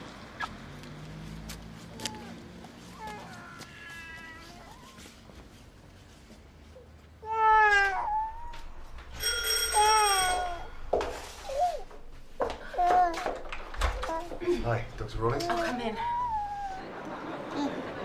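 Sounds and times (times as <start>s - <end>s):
baby crying: 7.2s - 8.7s, 12.6s - 13.4s, 15.3s - 16.9s
doorbell ringing: 9.1s - 11.1s.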